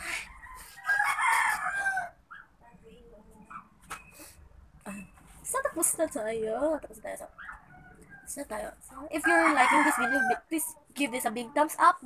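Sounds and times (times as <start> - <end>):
rooster crowing: 0.0 - 2.2, 9.1 - 10.5.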